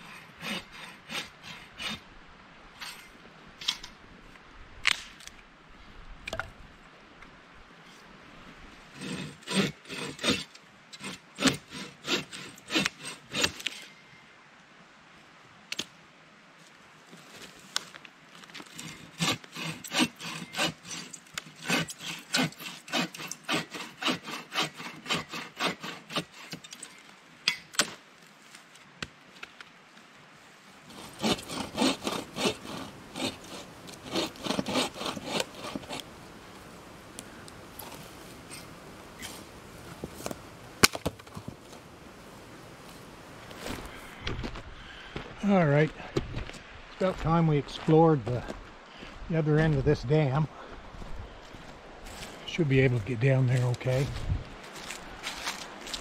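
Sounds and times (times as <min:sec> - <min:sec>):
bow saw cutting wood: 0:00.0 - 0:02.1, 0:09.0 - 0:13.8, 0:18.7 - 0:27.0, 0:30.9 - 0:41.1.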